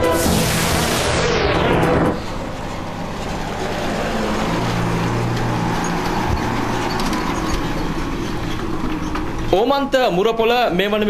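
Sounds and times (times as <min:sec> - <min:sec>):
lorry diesel engine running: 0:00.0 - 0:11.0.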